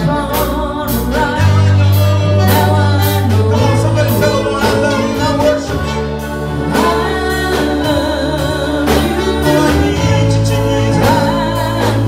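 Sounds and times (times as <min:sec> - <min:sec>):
church band with bass and keyboard: 0:00.0 - 0:12.0
people singing gospel: 0:00.0 - 0:12.0.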